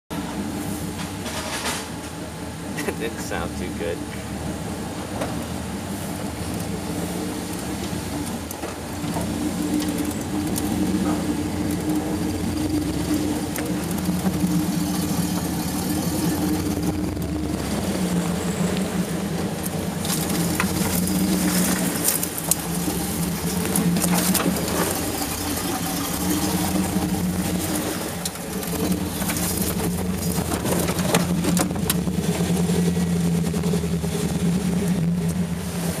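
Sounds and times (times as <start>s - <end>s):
off-road engine at low revs: 0.1s - 36.0s.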